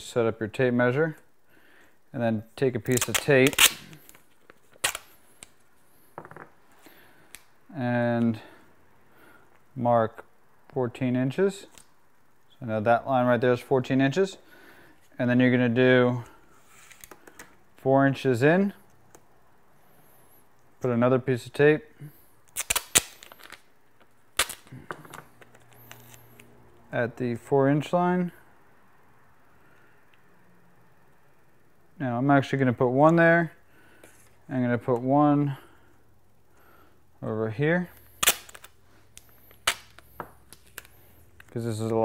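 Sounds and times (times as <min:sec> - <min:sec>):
masking tape ripping: 0:02.8 - 0:04.2, 0:04.8 - 0:05.1, 0:22.6 - 0:23.6, 0:24.4 - 0:24.8, 0:38.2 - 0:38.8, 0:39.5 - 0:41.0.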